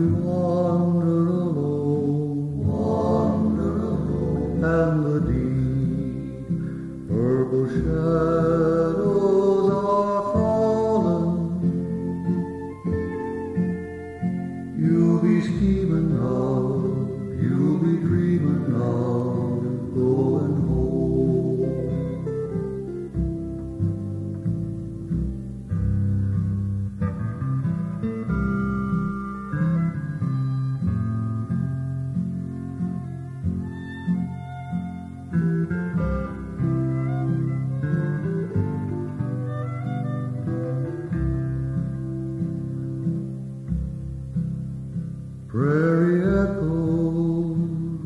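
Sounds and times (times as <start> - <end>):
acoustic guitar accompaniment: 0.0 - 48.0
fiddle playing melody: 2.6 - 7.7, 9.8 - 26.0, 27.0 - 43.7.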